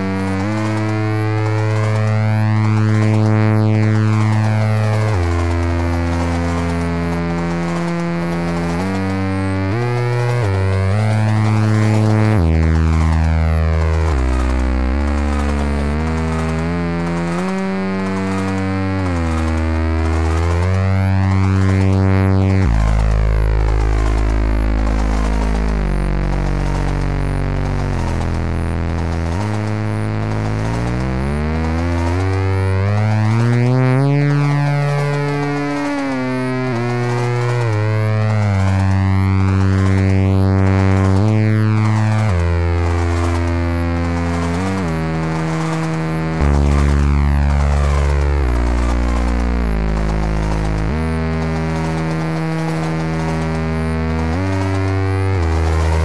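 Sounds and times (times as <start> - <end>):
buzzy synth chords: 0.0 - 56.0
synth bass line: 0.0 - 56.0.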